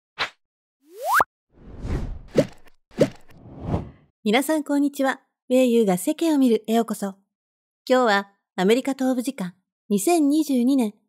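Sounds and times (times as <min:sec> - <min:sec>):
whoosh: 0:01.6 - 0:02.4, 0:03.3 - 0:04.0.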